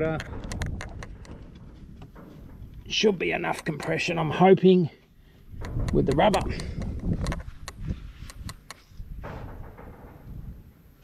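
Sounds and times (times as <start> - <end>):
soft rustle: 7.0 - 10.6.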